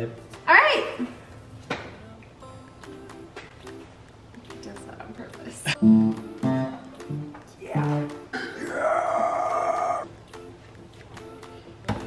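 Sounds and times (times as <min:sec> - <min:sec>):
person wailing: 0:08.4 - 0:10.0.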